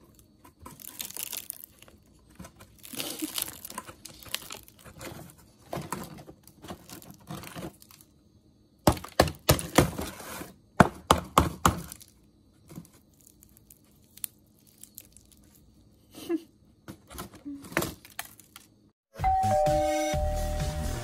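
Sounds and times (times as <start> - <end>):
rice crust crackling: 0.0 - 5.4, 12.8 - 15.9.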